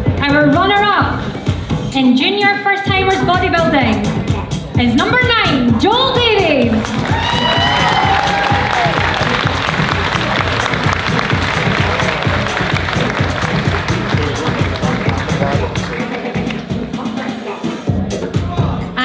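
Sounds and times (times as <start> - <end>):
loud music with steady beat: 0.0 - 19.0
audience applauding: 6.8 - 16.8.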